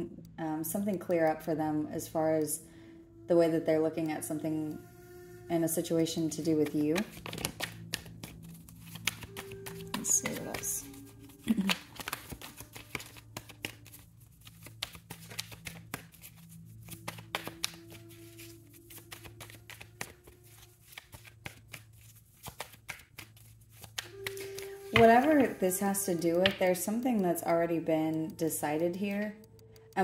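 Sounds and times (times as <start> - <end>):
quiet music of sustained tones: 0.0 - 30.0
cards being shuffled: 6.2 - 30.0.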